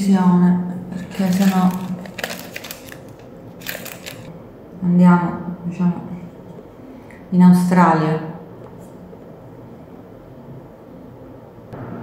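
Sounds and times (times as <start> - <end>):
makeup brush scraping and clicking: 1.0 - 4.3.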